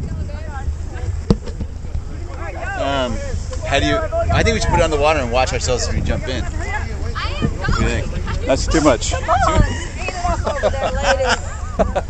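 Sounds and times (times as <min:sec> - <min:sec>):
faint voices: 0:00.0 - 0:12.0
wind rumble on microphone: 0:00.0 - 0:12.0.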